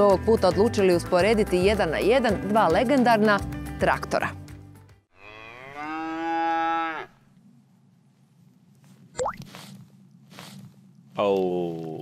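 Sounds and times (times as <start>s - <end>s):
cow mooing: 5.1s - 7.2s.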